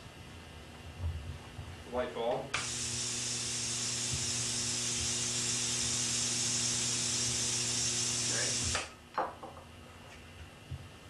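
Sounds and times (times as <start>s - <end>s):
low electrical hum: 0.0s - 11.0s
tesla coil spark hiss: 2.6s - 8.9s.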